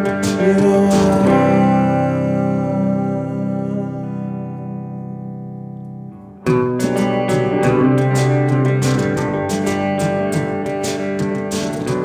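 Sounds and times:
electric guitar chord ringing: 0.0s - 12.0s
rhythmic picked electric guitar: 0.0s - 12.0s.

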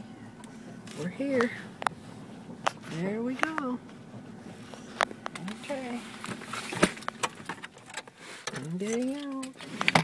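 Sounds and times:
clicks and knocks inside car: 0.8s - 10.0s.

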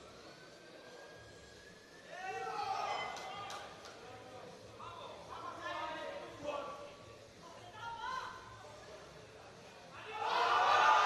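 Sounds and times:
voices shouting in a hall: 2.0s - 3.8s, 10.0s - 11.0s.

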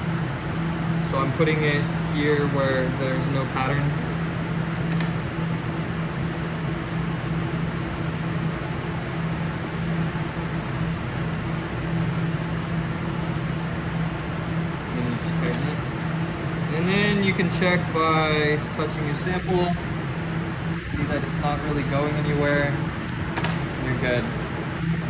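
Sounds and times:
lab machinery humming: 0.0s - 25.0s.

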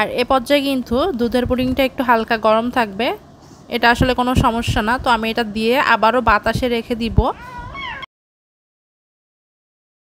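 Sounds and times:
woman speaking: 0.0s - 8.1s.

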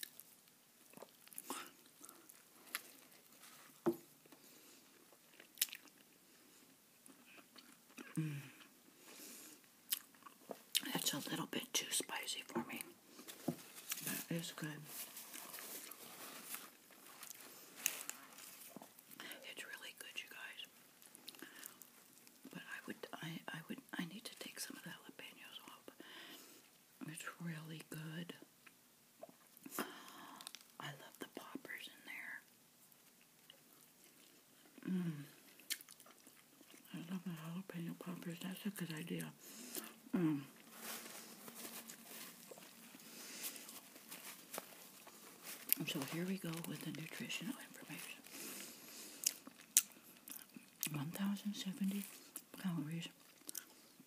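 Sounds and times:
chewing burger: 0.0s - 10.9s, 32.9s - 36.9s, 48.2s - 50.9s, 53.2s - 54.0s
woman whispering: 10.8s - 13.0s, 14.0s - 15.0s, 19.2s - 20.7s, 22.5s - 26.0s, 27.0s - 28.4s, 30.8s - 32.5s, 36.8s - 39.4s, 40.1s - 40.6s, 45.8s - 48.3s, 50.9s - 53.2s
woman humming: 40.1s - 40.6s.

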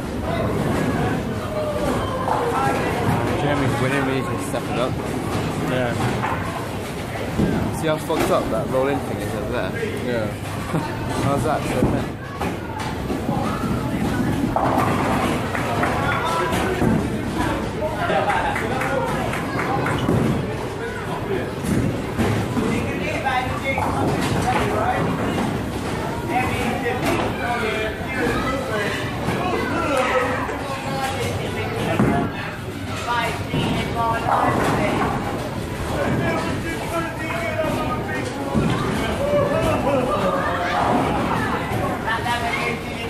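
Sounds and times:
indistinct voices and chatter: 0.0s - 43.0s.

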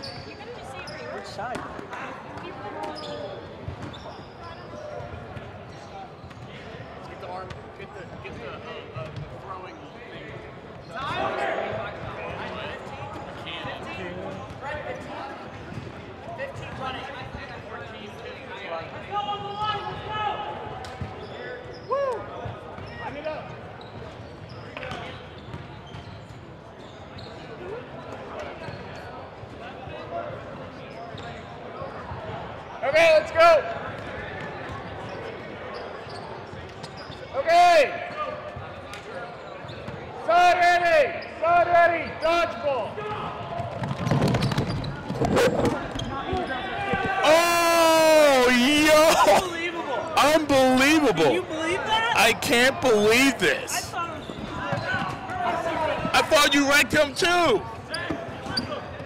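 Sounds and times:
players shouting with echo: 46.6s - 49.5s, 50.1s - 54.0s.

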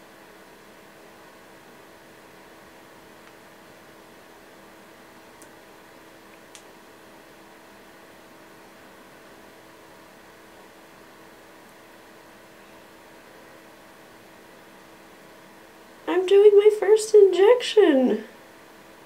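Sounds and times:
room hiss with faint hum: 0.0s - 19.0s.

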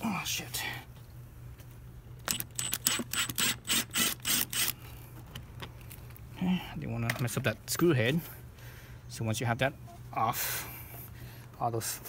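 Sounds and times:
cordless driver whining in bursts: 2.3s - 5.0s.

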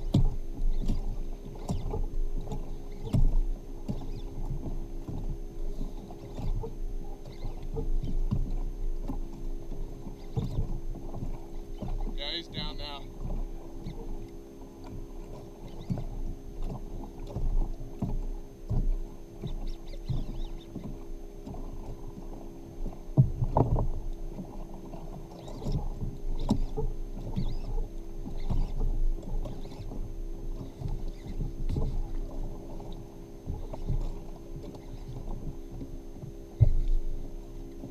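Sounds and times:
faint steady hum: 0.0s - 37.9s
water slapping against hull: 0.0s - 37.9s
knocks and bumps on kayak hull: 23.1s - 24.0s.

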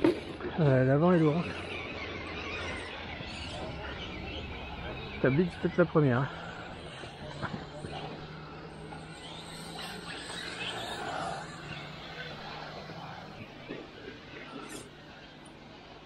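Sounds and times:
drone propellers humming: 0.0s - 16.0s
electric motor whirring: 1.5s - 16.0s.

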